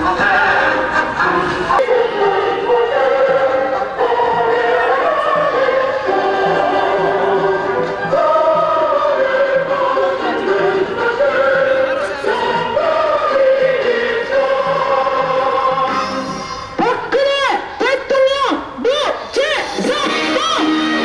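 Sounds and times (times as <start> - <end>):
choir singing: 0.0 - 16.3
musical accompaniment: 0.0 - 16.9, 19.6 - 21.0.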